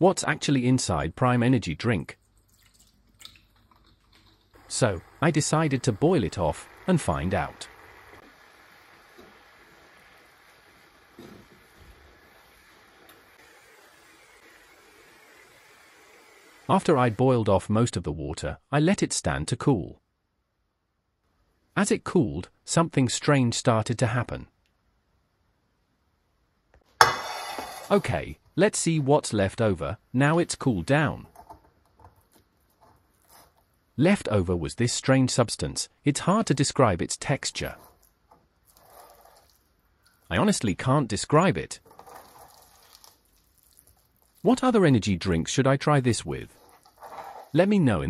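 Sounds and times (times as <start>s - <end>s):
liquid pouring into pan: 2.3s - 16.2s, 38.6s - 40.2s, 41.8s - 44.4s.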